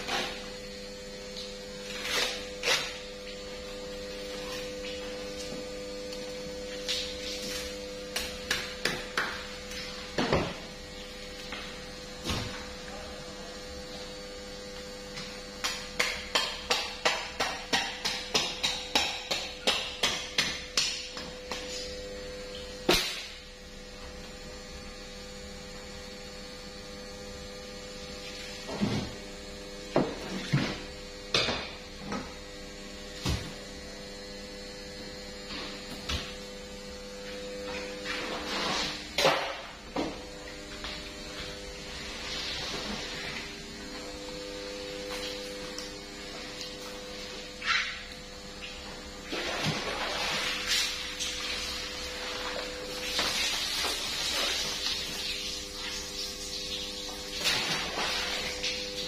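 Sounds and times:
steady electrical hum: 0:00.0 - 0:59.0.

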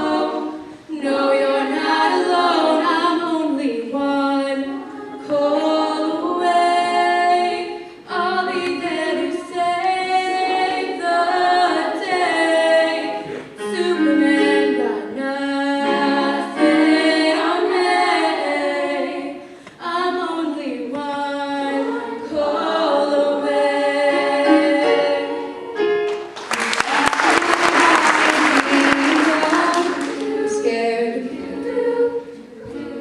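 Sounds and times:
girls' choir singing a cappella: 0:00.0 - 0:33.0.

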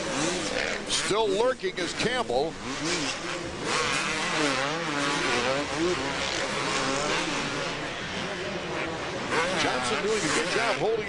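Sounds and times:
motorbike engines revving: 0:00.0 - 0:11.0.

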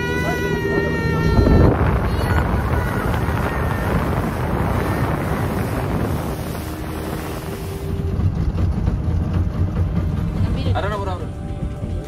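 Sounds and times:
motorboat engine drone: 0:00.0 - 0:12.0
water rushing along hull: 0:00.0 - 0:12.0
wind buffeting microphone: 0:00.0 - 0:12.0.

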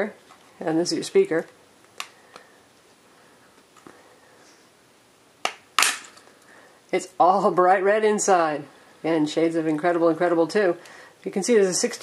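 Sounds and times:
plastic battery cover snapping off: 0:05.4 - 0:06.2.

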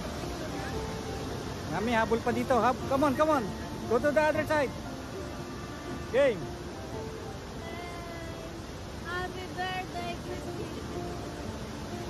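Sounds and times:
waterfall roaring: 0:00.0 - 0:12.0.

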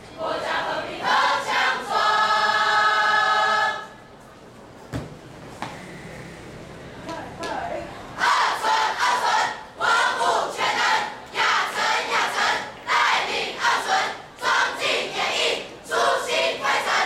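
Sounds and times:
crowd chanting in unison: 0:00.1 - 0:04.0, 0:08.2 - 0:17.0.

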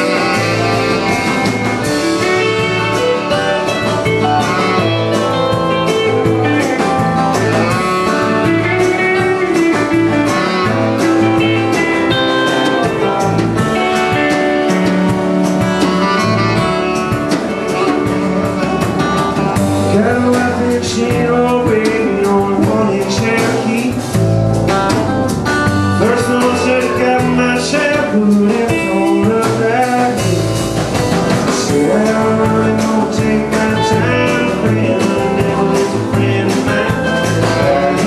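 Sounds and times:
country rock band playing: 0:00.0 - 0:38.0
drum strikes: 0:00.0 - 0:38.0.

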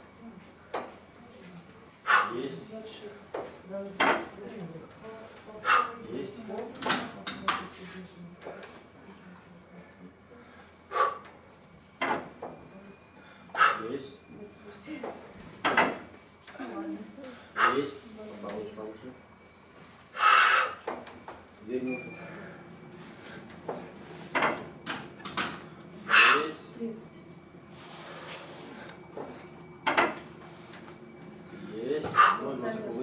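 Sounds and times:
man's forceful breath: 0:20.2 - 0:20.8.

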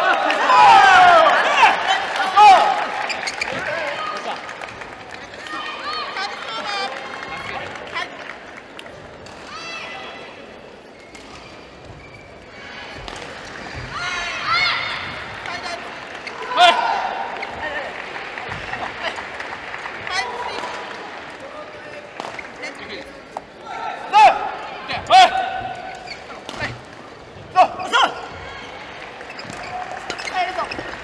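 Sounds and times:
spectators clapping: 0:00.0 - 0:09.2, 0:15.0 - 0:23.0, 0:28.8 - 0:31.0
shoes squeaking: 0:03.0 - 0:03.8, 0:10.9 - 0:13.0, 0:25.2 - 0:31.0.

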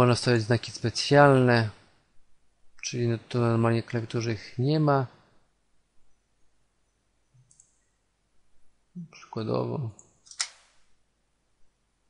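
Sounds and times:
computer mouse click: 0:07.4 - 0:07.9.

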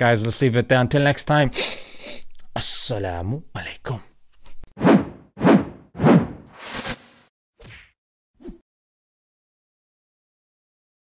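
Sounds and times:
quick whooshing hits: 0:04.8 - 0:07.2.

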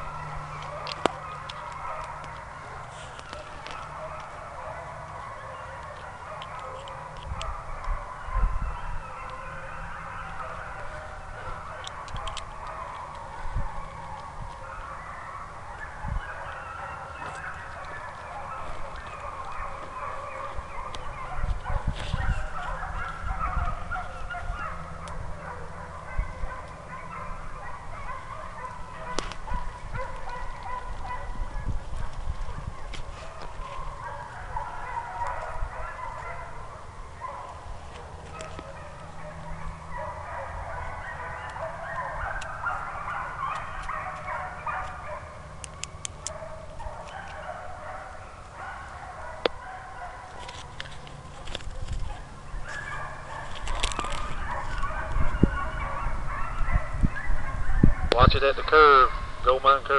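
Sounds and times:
distant hounds baying: 0:00.0 - 0:59.9.

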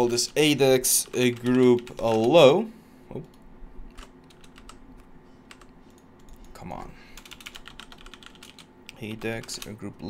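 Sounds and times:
keyboard keys clicking: 0:03.9 - 0:04.8, 0:07.2 - 0:09.8.

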